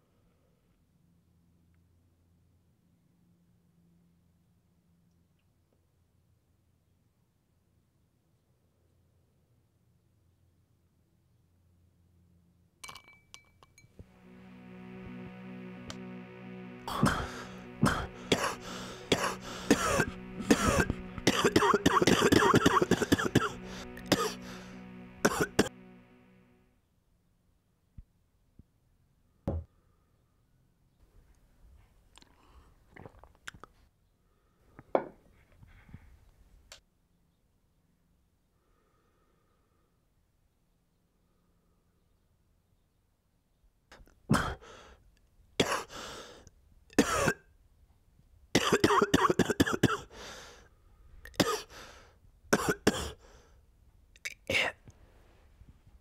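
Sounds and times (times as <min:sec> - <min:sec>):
held music chord: 0:14.0 - 0:26.8
man coughing: 0:17.8 - 0:24.4, 0:25.2 - 0:25.7, 0:44.3 - 0:44.6, 0:45.6 - 0:45.9, 0:47.0 - 0:47.4, 0:48.6 - 0:50.1, 0:51.4 - 0:51.7, 0:52.6 - 0:53.2.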